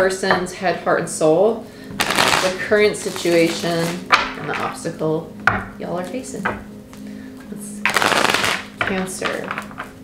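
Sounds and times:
cards riffle-shuffled: 0:02.0 - 0:04.0, 0:07.9 - 0:08.7.

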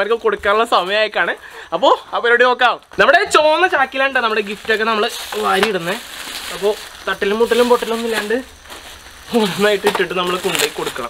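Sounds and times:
man talking: 0:00.0 - 0:08.5, 0:09.3 - 0:11.0
rustle of sack and foil: 0:03.4 - 0:11.0.

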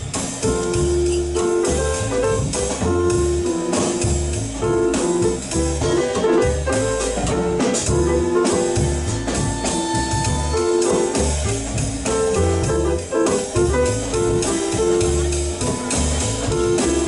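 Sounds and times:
double bass: 0:00.0 - 0:17.0
drum kit with cymbals: 0:00.0 - 0:17.0
grand piano: 0:00.0 - 0:17.0
bowed violin lead: 0:06.7 - 0:11.9.

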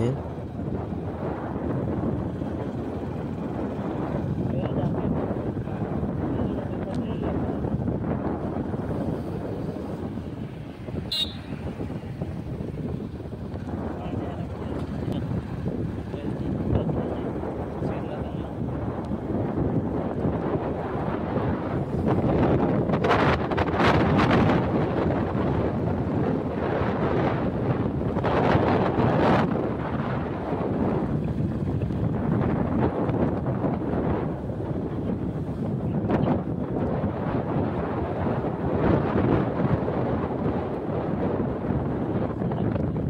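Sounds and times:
road noise: 0:00.0 - 0:43.0
wind rushing over microphone: 0:00.0 - 0:43.0.

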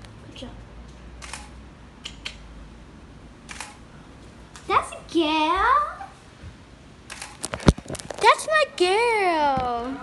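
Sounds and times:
faint room hum: 0:00.0 - 0:10.0
camera shutter clicks: 0:01.2 - 0:02.4, 0:03.5 - 0:03.8, 0:07.1 - 0:07.8.

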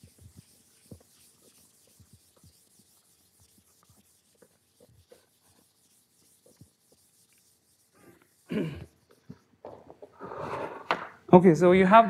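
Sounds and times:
chalk writing on a blackboard: 0:00.0 - 0:09.6.

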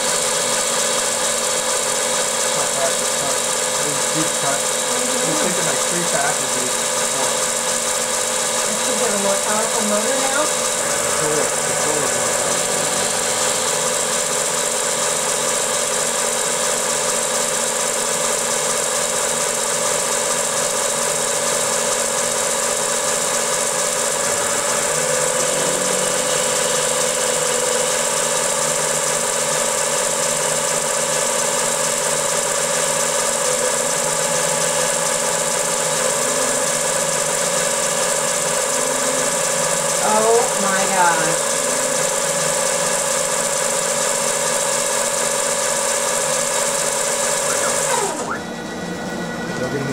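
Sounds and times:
milling machine whine: 0:00.0 - 0:49.9.

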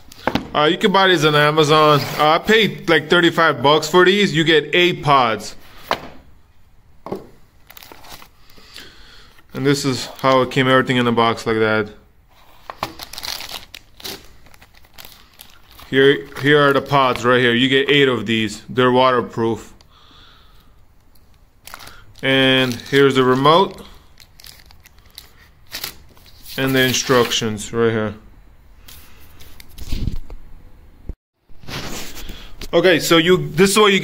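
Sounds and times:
paper rustling: 0:07.6 - 0:08.6, 0:12.3 - 0:17.3, 0:24.2 - 0:27.4, 0:28.8 - 0:30.3, 0:31.6 - 0:32.7
plastic bags crinkling: 0:07.6 - 0:08.8, 0:12.6 - 0:17.2, 0:21.6 - 0:26.6.

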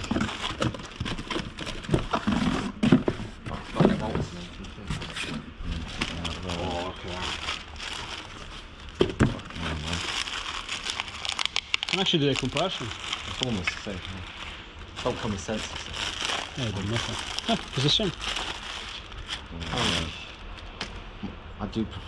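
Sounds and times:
plastic bag crinkling: 0:00.0 - 0:02.6, 0:05.7 - 0:20.6.

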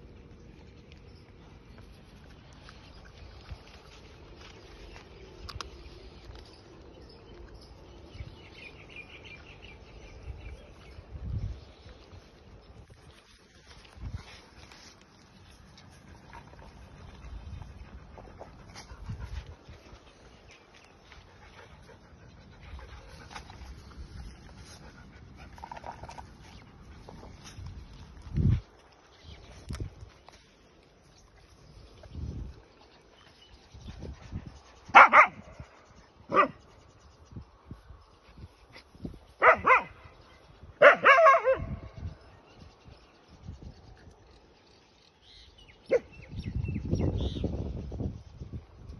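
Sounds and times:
dog barking: 0:34.9 - 0:35.4, 0:36.3 - 0:36.6, 0:39.4 - 0:39.9, 0:40.8 - 0:41.8.

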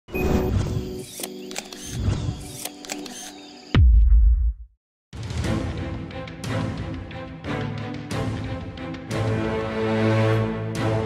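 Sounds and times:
sharp clicks: 0:01.0 - 0:03.5.

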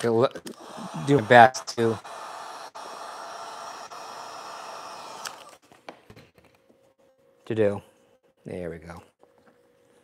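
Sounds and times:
heat gun blowing: 0:00.4 - 0:05.6.

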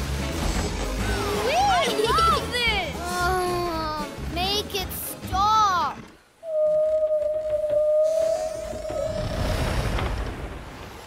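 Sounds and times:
cartoon whale singing: 0:06.4 - 0:09.6.

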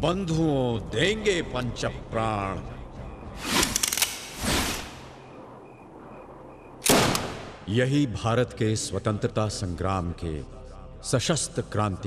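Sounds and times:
flintlock gunshot: 0:06.8 - 0:07.7.

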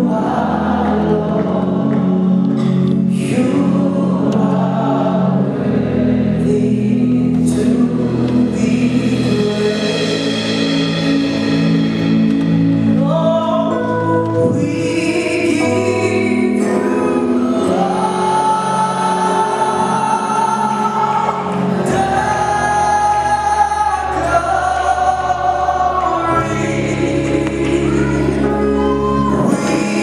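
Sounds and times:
group singing gospel: 0:00.0 - 0:12.0, 0:13.0 - 0:30.0
electric bass guitar: 0:00.0 - 0:19.3, 0:19.9 - 0:30.0
keyboard: 0:00.0 - 0:30.0.

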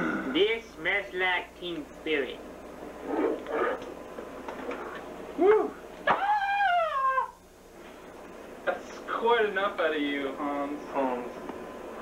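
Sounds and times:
man howling cry: 0:05.4 - 0:07.4.

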